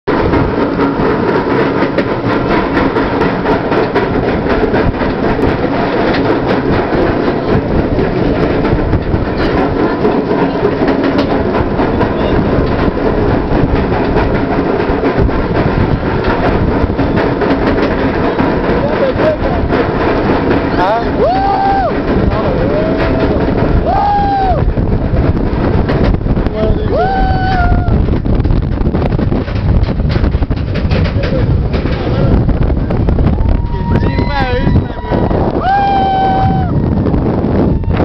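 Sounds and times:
anti-rollback dogs clicking: 0.1 - 27.0.

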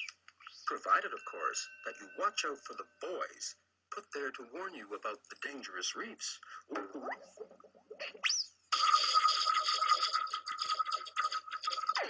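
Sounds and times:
bubbling noise: 6.7 - 12.0.

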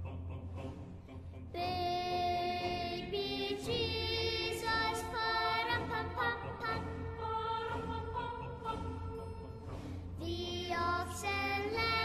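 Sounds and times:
soft instrumental music: 1.6 - 12.0.

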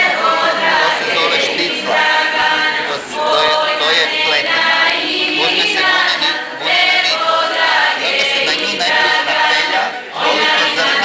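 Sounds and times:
group singing in harmony: 0.0 - 11.0.

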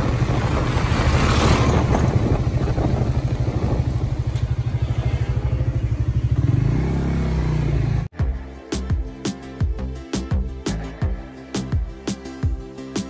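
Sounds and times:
truck passing: 0.0 - 8.1
motorcycle engine running: 0.0 - 8.3.

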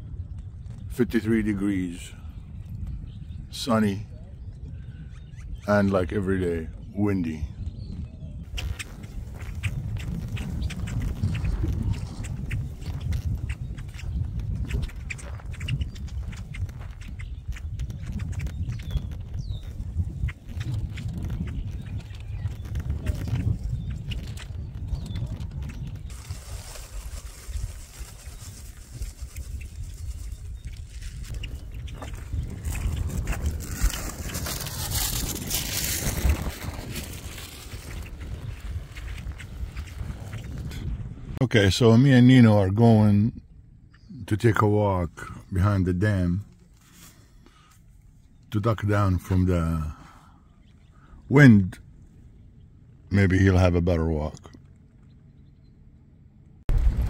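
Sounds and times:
gusty wind on microphone: 0.0 - 41.9, 56.6 - 57.0.

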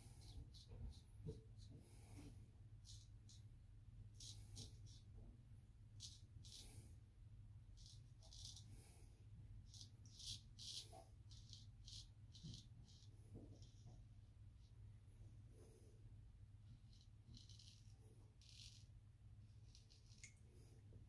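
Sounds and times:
razor scraping stubble: 9.7 - 13.9, 16.8 - 18.9, 19.6 - 20.4.

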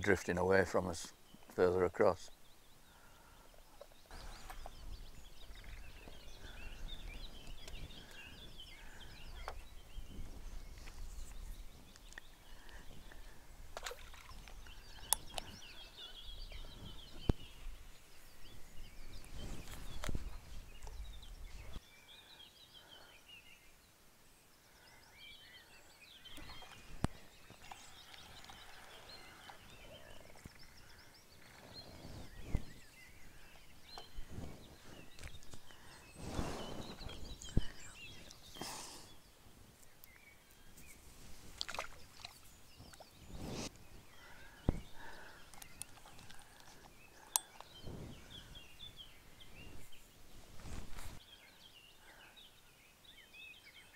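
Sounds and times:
songbirds singing: 0.0 - 53.9
wind rumbling on microphone: 4.1 - 21.8, 29.6 - 38.6, 40.9 - 51.2.

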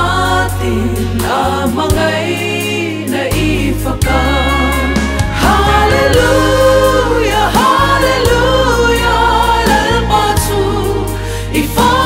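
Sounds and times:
instrumental backing with bass: 0.0 - 12.0
women singing in harmony: 0.0 - 12.0.

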